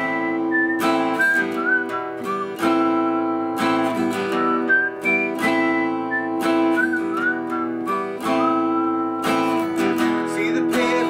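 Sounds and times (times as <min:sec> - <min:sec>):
acoustic guitar chords: 0:00.0 - 0:11.0
person whistling a melody: 0:00.0 - 0:11.0.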